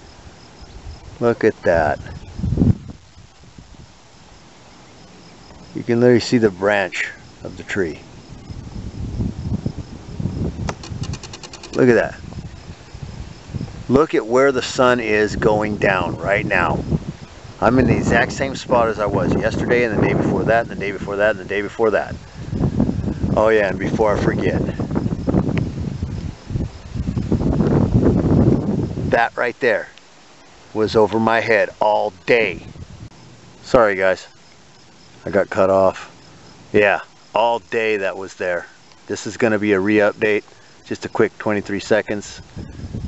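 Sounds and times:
low rumble on microphone: 0.0 - 14.1, 15.0 - 29.2, 42.4 - 43.0
crickets chirping: 0.0 - 43.0
fast high pulsing trill: 10.8 - 12.1.

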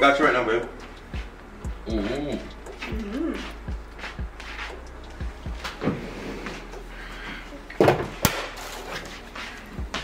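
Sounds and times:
low steady hum: 0.0 - 8.7.

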